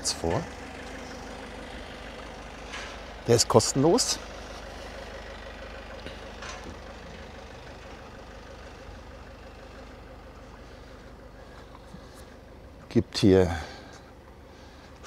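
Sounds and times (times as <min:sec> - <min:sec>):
engine idling: 0:00.0 - 0:15.0.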